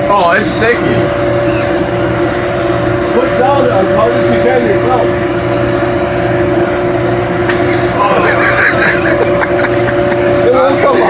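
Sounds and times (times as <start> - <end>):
shop machinery hum: 0.0 - 11.0
voices talking: 0.0 - 11.0.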